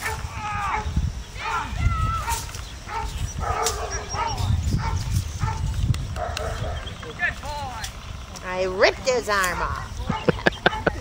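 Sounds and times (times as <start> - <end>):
dog barking and yipping: 0.0 - 1.0, 2.2 - 7.0, 9.5 - 11.0
low rumble of wind: 0.0 - 11.0.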